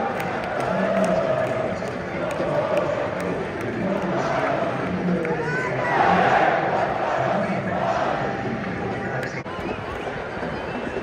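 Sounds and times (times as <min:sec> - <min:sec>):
scattered claps: 0:00.0 - 0:05.5
stadium crowd din: 0:00.0 - 0:11.0.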